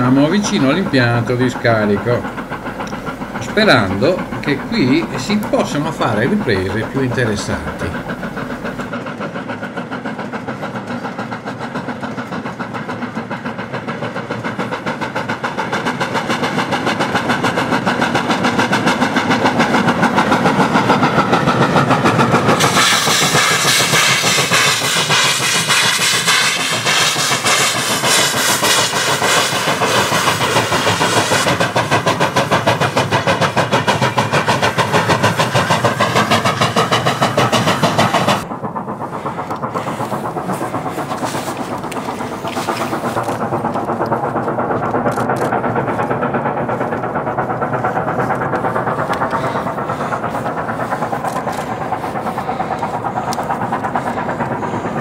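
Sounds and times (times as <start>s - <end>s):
steam locomotive exhaust beats: 0.0s - 55.0s.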